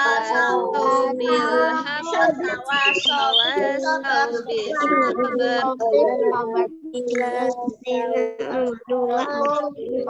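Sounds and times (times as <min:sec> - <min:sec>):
woman and children chanting: 0:00.0 - 0:10.0.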